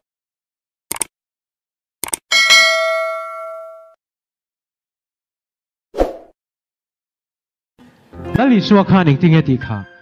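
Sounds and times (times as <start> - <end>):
bell ding: 2.3 - 4.0.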